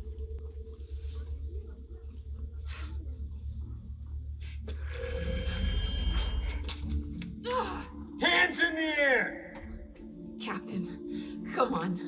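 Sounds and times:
deep rumbling drone: 0:00.0 - 0:08.2
high ringing tones: 0:04.9 - 0:06.7.

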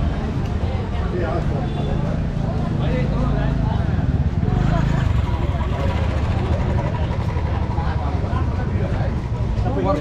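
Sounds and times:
people talking: 0:00.0 - 0:10.0
motor scooter engine passing: 0:04.3 - 0:09.1.

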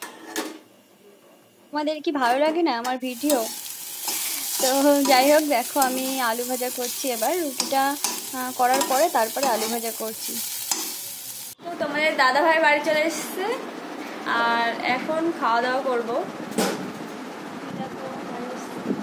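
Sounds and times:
woman talking: 0:01.8 - 0:03.6, 0:04.6 - 0:10.4, 0:11.6 - 0:16.4, 0:17.6 - 0:19.0
metal spatula stirring: 0:03.0 - 0:11.6
potato strips sizzling in frying pan: 0:03.0 - 0:11.6.

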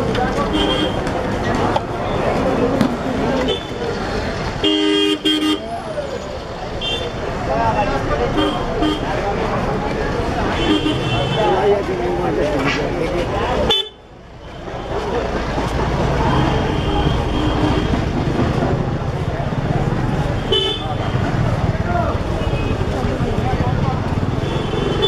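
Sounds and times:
many voices: 0:00.0 - 0:25.0
traffic: 0:00.0 - 0:25.0
vehicle horns honking: 0:00.4 - 0:01.1, 0:04.6 - 0:05.6, 0:10.5 - 0:11.6, 0:20.4 - 0:21.1, 0:24.4 - 0:25.0.

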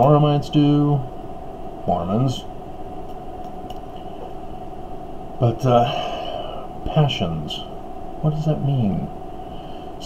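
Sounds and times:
faint even whine: 0:00.0 - 0:10.0
steady background hum: 0:00.0 - 0:10.0.

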